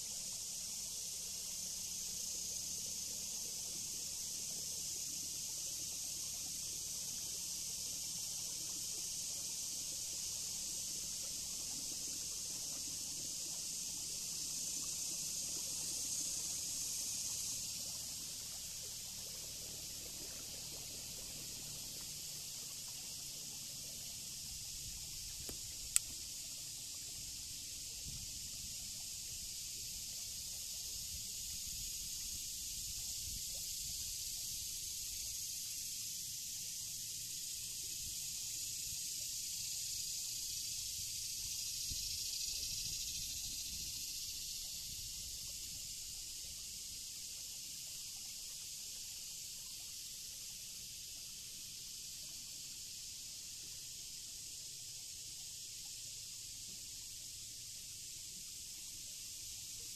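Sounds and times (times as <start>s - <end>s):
high-pitched insect chorus: 0.0s - 59.9s.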